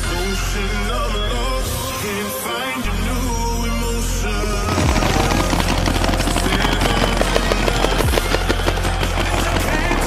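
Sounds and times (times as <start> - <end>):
paintball markers firing: 4.7 - 10.0.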